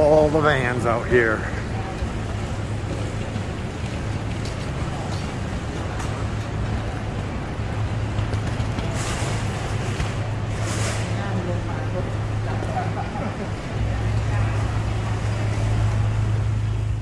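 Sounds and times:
idling vans and traffic drone: 0:00.0 - 0:17.0.

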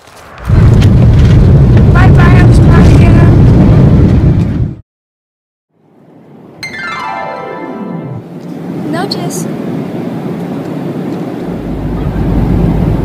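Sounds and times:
airliner engines rumbling in cabin: 0:08.2 - 0:13.0.

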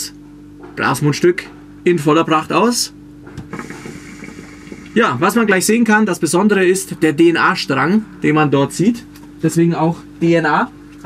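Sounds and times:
hookah water bubbling: 0:03.2 - 0:07.0.

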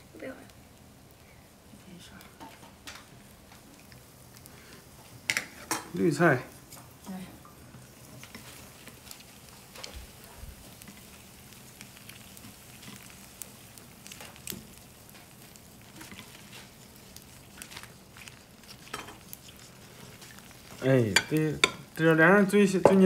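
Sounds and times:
broth simmering and bubbling: 0:00.0 - 0:23.0
chopsticks clicking against bowls: 0:20.2 - 0:21.8.

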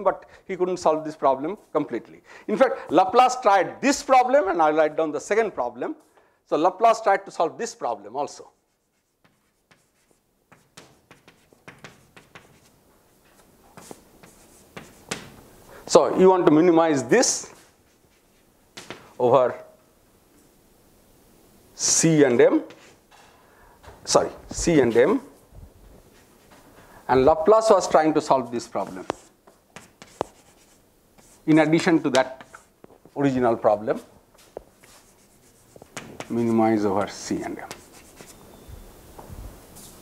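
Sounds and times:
chalk tapping and scraping: 0:08.3 - 0:15.5, 0:17.4 - 0:19.2, 0:22.6 - 0:23.3, 0:28.4 - 0:33.2, 0:33.9 - 0:38.4.

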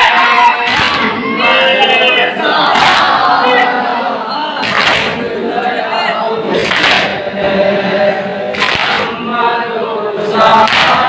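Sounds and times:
sustained sung chant: 0:00.0 - 0:11.0
chest-beating slaps: 0:04.6 - 0:05.2, 0:06.6 - 0:07.2, 0:08.5 - 0:09.1, 0:10.6 - 0:11.0.

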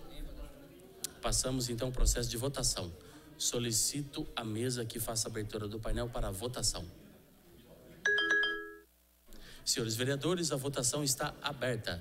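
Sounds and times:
electronic alert chime: 0:08.1 - 0:08.8.

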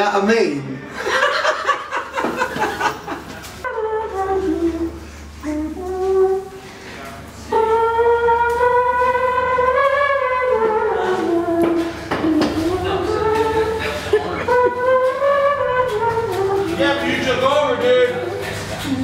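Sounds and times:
wordless singing: 0:03.6 - 0:19.0.

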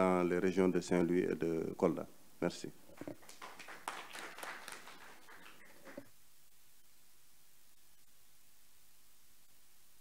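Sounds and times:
scattered applause: 0:03.1 - 0:06.1.

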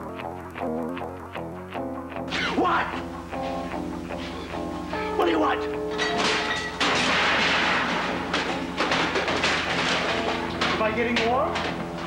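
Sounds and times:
sharp thuds and knocks: 0:06.1 - 0:12.0.

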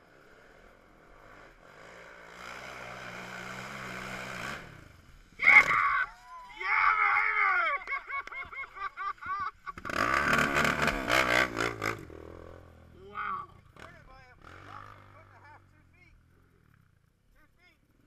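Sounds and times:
quad engine: 0:00.0 - 0:06.2, 0:07.8 - 0:18.0
people shouting and yelling: 0:05.4 - 0:08.1.

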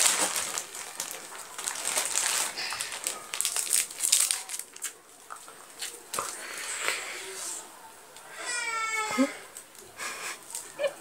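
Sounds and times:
gum wrapper crinkling and tearing: 0:00.0 - 0:06.4.

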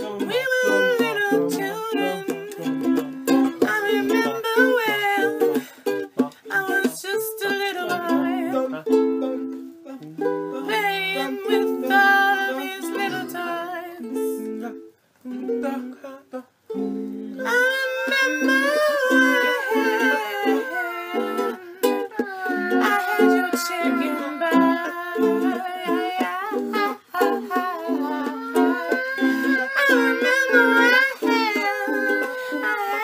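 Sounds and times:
ukulele strumming chords: 0:00.0 - 0:33.0.

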